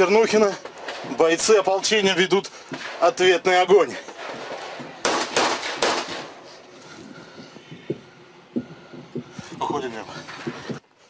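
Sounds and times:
rifle shots echoing: 4.4 - 6.4.

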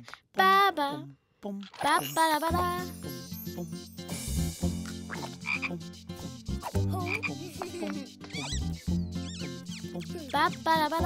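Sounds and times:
cartoon frogs croaking: 1.5 - 2.5, 4.8 - 11.0
whistling pitch glides: 7.9 - 10.7.

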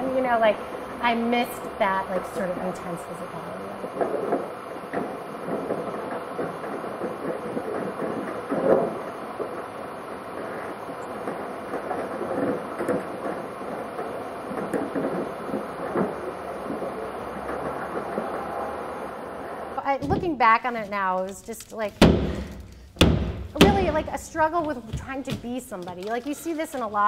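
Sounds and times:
wooden chairs knocking and scraping: 4.0 - 9.6, 19.8 - 26.2.

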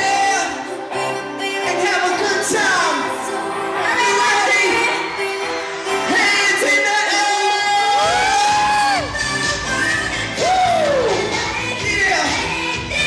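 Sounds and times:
loud pop music: 0.0 - 13.0
woman singing into a microphone: 0.1 - 6.7, 8.2 - 13.0
heavy bass: 8.0 - 13.0.

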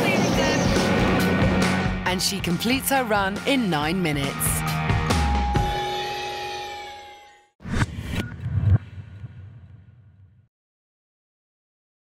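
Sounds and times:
music chord ringing out: 5.0 - 7.5
low rumble: 7.6 - 10.5.

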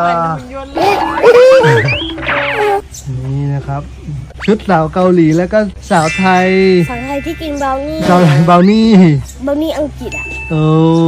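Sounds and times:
springy cartoon boing glides: 1.0 - 2.8.

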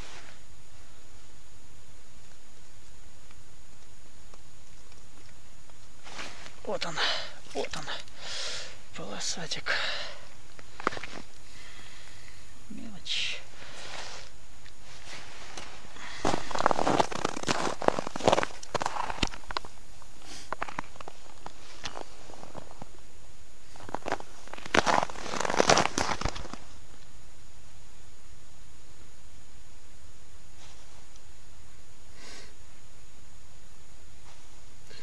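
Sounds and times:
boots crunching on snow and ice: 14.8 - 19.8, 23.6 - 26.7.

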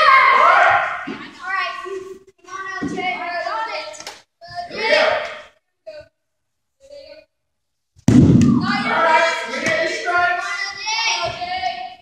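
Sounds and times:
children shouting: 0.0 - 1.1
loud thump: 8.0 - 8.9.

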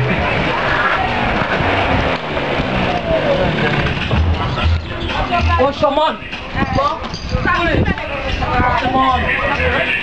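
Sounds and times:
motor scooter engine approaching: 0.0 - 5.6.

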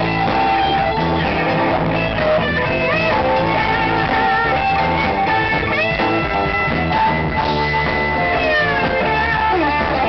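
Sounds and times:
bass guitar: 0.0 - 10.0
drums: 0.0 - 10.0
lead electric guitar: 0.0 - 10.0.

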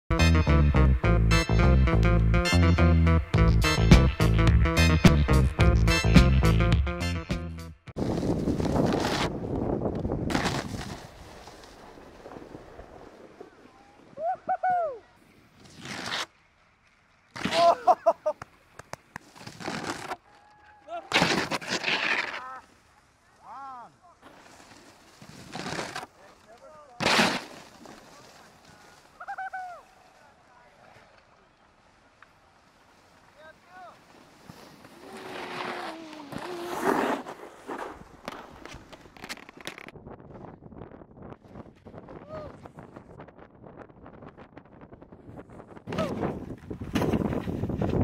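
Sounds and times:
snowboards scraping on snow: 8.0 - 14.1, 15.2 - 16.4, 21.1 - 22.9, 24.2 - 31.2, 32.6 - 39.0
people shouting hoots: 29.2 - 30.2.

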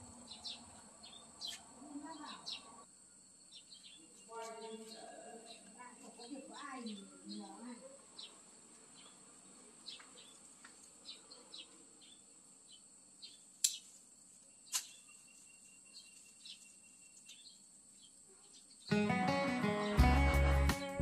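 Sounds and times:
high insect hum: 0.0 - 19.0
short insect chirps: 12.0 - 18.9
pruning shears snipping: 13.6 - 13.9, 14.7 - 15.0.

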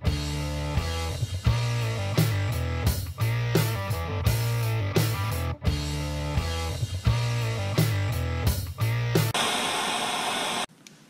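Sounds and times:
guitar music with bass and drums: 0.0 - 9.4.

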